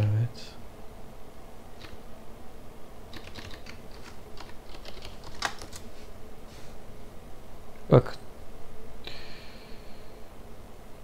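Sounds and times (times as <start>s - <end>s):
computer keyboard keystrokes: 3.1s - 5.9s.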